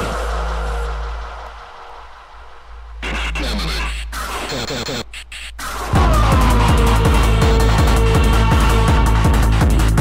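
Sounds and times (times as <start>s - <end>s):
hiss and faint tones: 0.0s - 5.9s
techno beat and bass: 2.7s - 10.0s.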